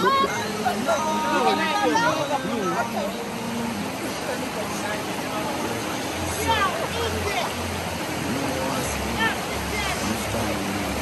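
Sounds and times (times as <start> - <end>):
people calling out: 0.0 - 3.2
people laughing: 0.0 - 3.2
river water rushing past rocks: 0.0 - 11.0.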